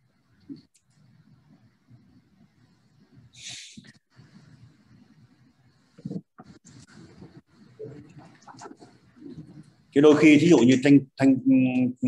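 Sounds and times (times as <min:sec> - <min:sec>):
faint hum: 0:00.0 - 0:12.0
sharp breath on microphone: 0:03.3 - 0:04.0.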